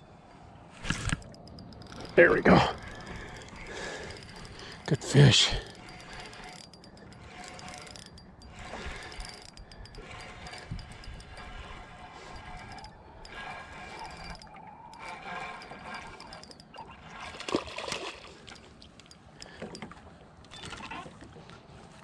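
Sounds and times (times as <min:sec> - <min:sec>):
fishing reel clicking: 0:00.8 - 0:20.8.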